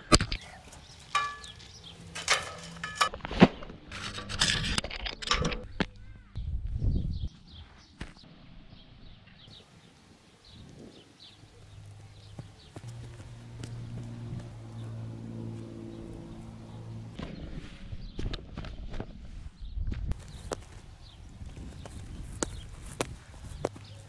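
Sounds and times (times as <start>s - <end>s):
net fittings clinking on metal frame: 0.5s - 3.2s.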